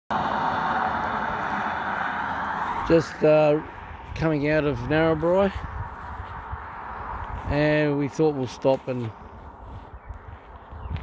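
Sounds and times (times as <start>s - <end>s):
car tyre and road noise: 0.1s - 11.0s.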